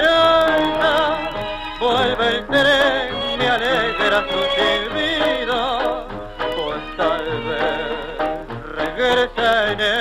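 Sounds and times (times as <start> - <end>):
tango orchestra music: 0.0 - 10.0.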